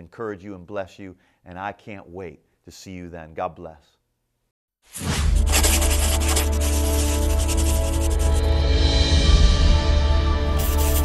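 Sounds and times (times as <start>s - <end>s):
scratchy sketching strokes: 5.3s - 8.8s, 10.5s - 11.0s.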